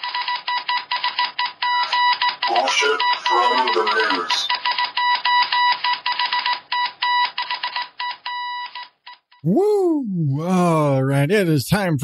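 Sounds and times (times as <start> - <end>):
high electronic beep pulses: 1.7 - 4.6.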